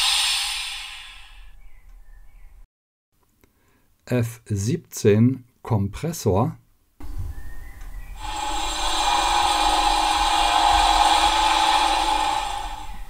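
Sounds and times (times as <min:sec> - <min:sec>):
compressor hum with hiss: 0:00.0 - 0:01.6, 0:08.2 - 0:13.0
low rumble: 0:08.1 - 0:13.0.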